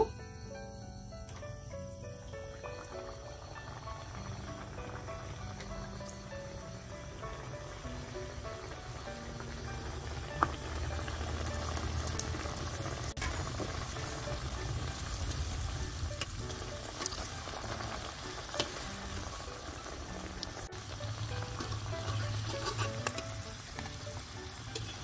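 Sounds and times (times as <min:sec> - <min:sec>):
dough deep-frying in sizzling oil: 0:01.6 - 0:25.0.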